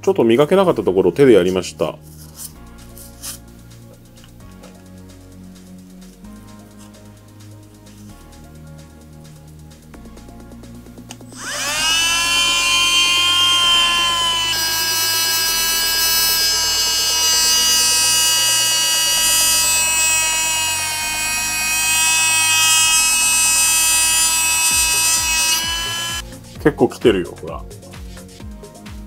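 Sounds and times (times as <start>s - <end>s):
rotary tool high whine: 11.3s - 26.4s
sanding disc polishing metal: 11.3s - 26.4s.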